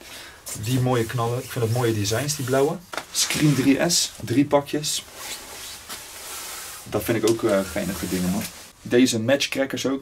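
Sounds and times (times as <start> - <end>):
rustle rubbing on microphone: 0.5 - 3.9, 5.0 - 8.8.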